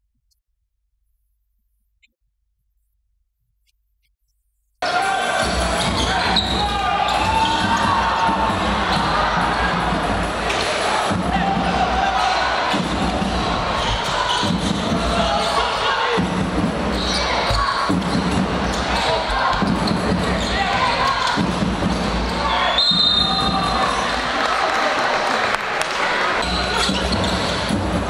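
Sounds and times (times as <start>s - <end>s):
voices of crowd and players: 4.8s - 28.0s
high shoe squeak: 5.7s - 7.8s, 26.4s - 27.7s.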